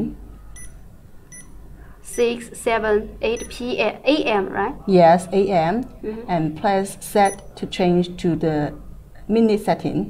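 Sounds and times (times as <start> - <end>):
controller button beeps: 3.4 - 3.6.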